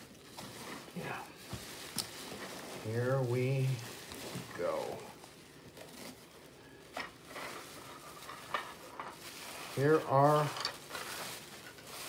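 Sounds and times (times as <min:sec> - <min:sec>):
bubble wrap rustling and crinkling: 0:00.0 - 0:12.0.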